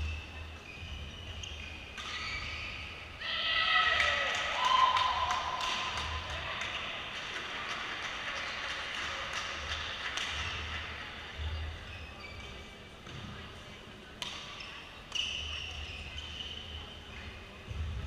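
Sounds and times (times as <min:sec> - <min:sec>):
hand claps: 0:04.0 - 0:11.1.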